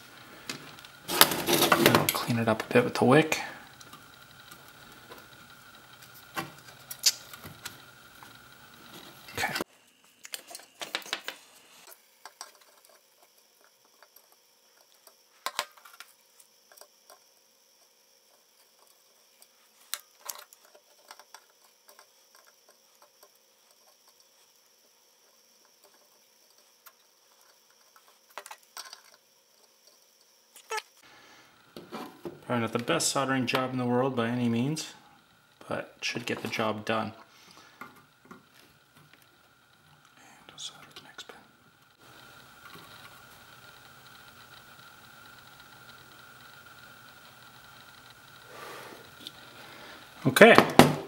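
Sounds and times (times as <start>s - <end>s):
soldering tools clicking: 3.7s - 9.4s.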